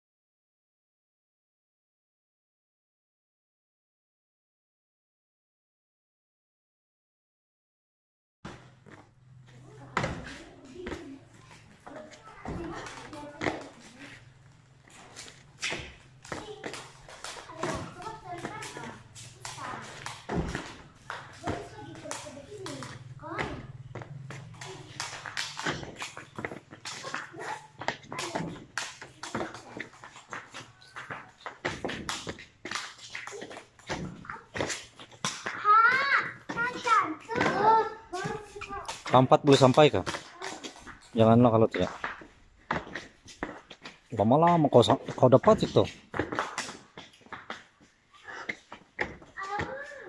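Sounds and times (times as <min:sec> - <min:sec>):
voices talking: 0:09.5 - 0:31.5
feet jumping on wooden steps: 0:09.8 - 0:50.0.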